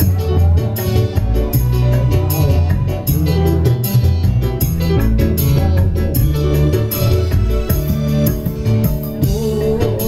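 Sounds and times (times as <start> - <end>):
bass line: 0.0 - 10.0
guitar: 0.0 - 10.0
drum beat: 1.2 - 10.0.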